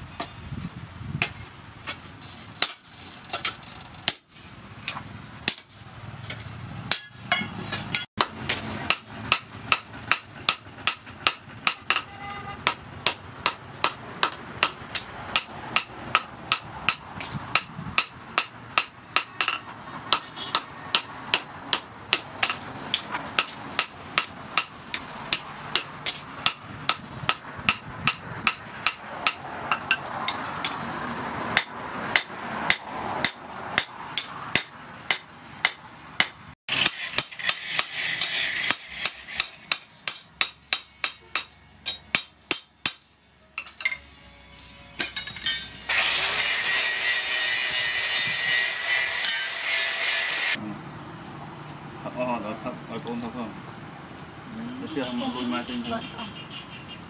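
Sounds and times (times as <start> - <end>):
hammer striking metal on anvil: 6.9 - 30.8, 31.6 - 44.1, 44.7 - 49.7.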